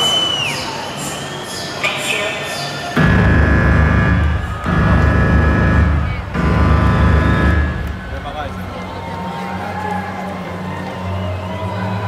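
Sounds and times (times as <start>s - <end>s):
steady drone: 3.0s - 8.8s
deep swells over loudspeakers: 3.0s - 8.9s.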